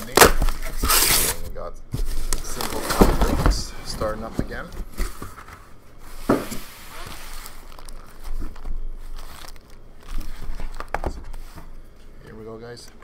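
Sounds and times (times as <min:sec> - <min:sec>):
foil wrappers crinkling and tearing: 0:02.2 - 0:03.3, 0:06.8 - 0:11.6
packs knocking on table: 0:10.6 - 0:11.4.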